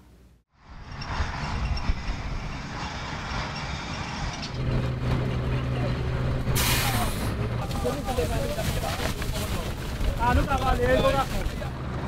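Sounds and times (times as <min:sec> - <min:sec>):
truck rumbling on rough track: 0:00.6 - 0:12.0
air hiss: 0:06.6 - 0:07.3.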